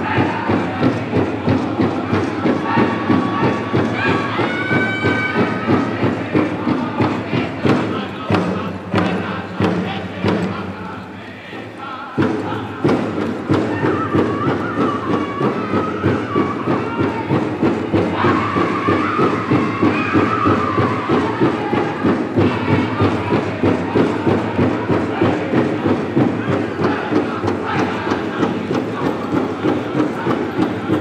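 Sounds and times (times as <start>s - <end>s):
large hand drum beating: 0.0s - 31.0s
singers in high unison: 0.0s - 31.0s.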